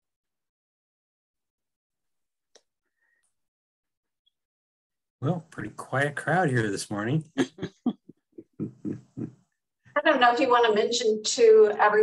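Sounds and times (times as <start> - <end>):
man chuckling: 7.2 - 9.4.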